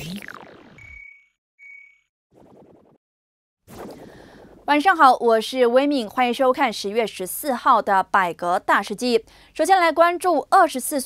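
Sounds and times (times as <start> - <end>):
short high beeps: 0.8 - 2.1.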